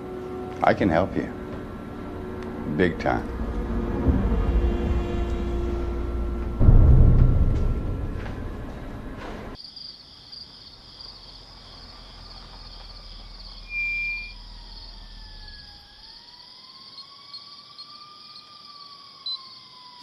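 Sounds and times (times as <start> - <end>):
faint wavering tones: 0.0 - 9.6
crickets chirping: 0.0 - 20.0.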